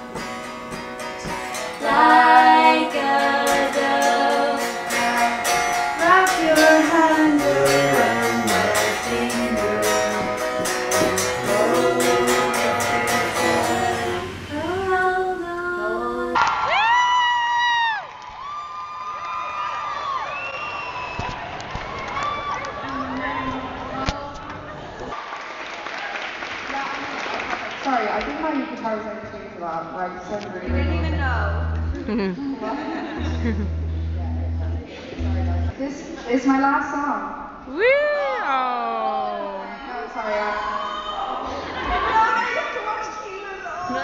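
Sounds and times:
electric guitar strumming: 0:00.0 - 0:15.2, 0:30.6 - 0:32.3, 0:33.1 - 0:35.8
woman singing: 0:01.2 - 0:10.3, 0:11.1 - 0:16.4
woman singing long sliding notes: 0:01.8 - 0:10.3, 0:11.0 - 0:16.4, 0:30.7 - 0:32.4.

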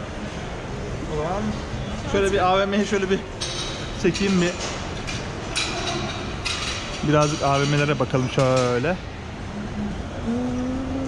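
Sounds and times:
shopping centre background noise: 0:00.0 - 0:11.0.

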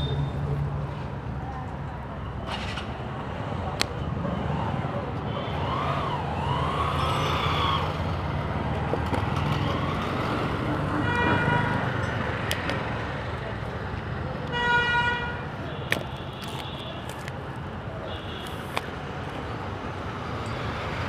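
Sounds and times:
road traffic rumbling: 0:00.0 - 0:21.0
rising and falling siren wail: 0:05.5 - 0:08.4
vehicle horn: 0:11.0 - 0:11.8, 0:14.5 - 0:15.4.

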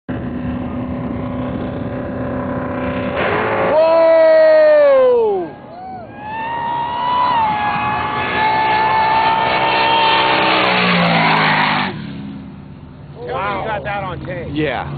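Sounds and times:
drag race engines revving: 0:00.1 - 0:14.9.

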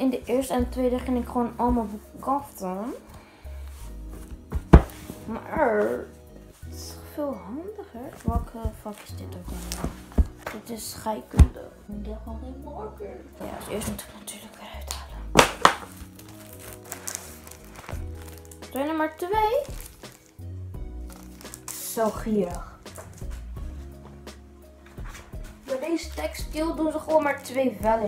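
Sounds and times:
background music: 0:00.0 - 0:28.0
book knocking on table: 0:04.3 - 0:05.1, 0:08.2 - 0:08.9, 0:09.7 - 0:10.6
book thud on tabletop: 0:04.5 - 0:05.2, 0:09.7 - 0:10.6, 0:15.4 - 0:15.9
sharp cracks: 0:15.4 - 0:16.2.

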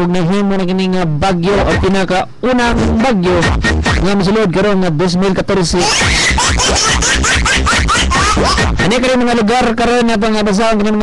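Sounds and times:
man's voice: 0:00.0 - 0:11.0
pulsing bass beat: 0:01.5 - 0:04.4, 0:05.8 - 0:09.4.

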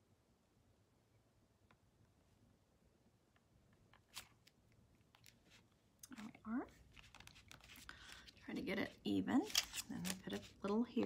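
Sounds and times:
paper rustling: 0:03.9 - 0:11.0.

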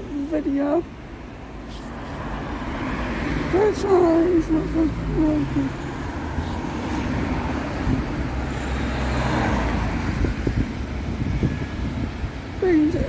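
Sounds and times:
low traffic rumble: 0:00.0 - 0:13.0
vehicle passing: 0:00.0 - 0:13.0.

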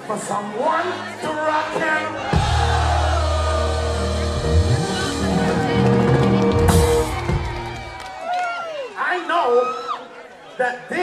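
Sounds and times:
bass guitar: 0:02.2 - 0:07.9.

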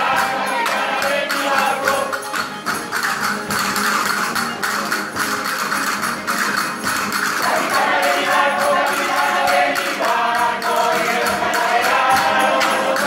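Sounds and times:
group of people singing: 0:00.0 - 0:02.4, 0:07.4 - 0:13.0
clicking hand percussion: 0:00.0 - 0:13.0
strummed guitar: 0:00.0 - 0:13.0.

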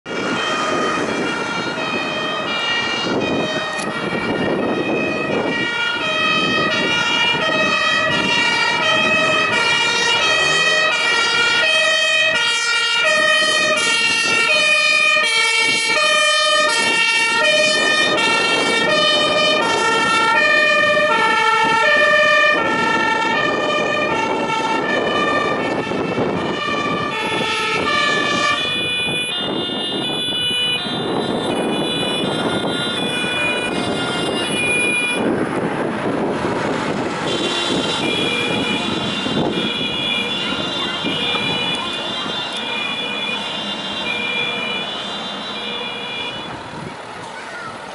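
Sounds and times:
street traffic noise: 0:00.0 - 0:47.9
two-tone emergency siren: 0:00.1 - 0:46.9.

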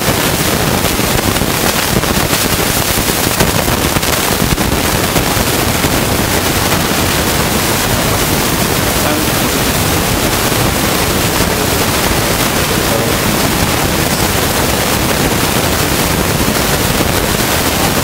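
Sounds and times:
static hiss: 0:00.0 - 0:18.0.

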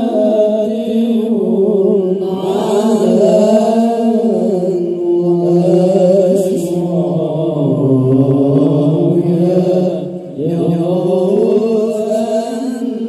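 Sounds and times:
men chanting into microphones: 0:00.0 - 0:13.0.

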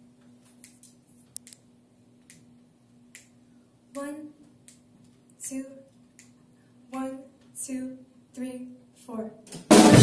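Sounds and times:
faint steady hum: 0:00.0 - 0:10.0
soft finger snaps: 0:03.1 - 0:04.0, 0:06.2 - 0:06.4
person counting: 0:03.9 - 0:06.4.

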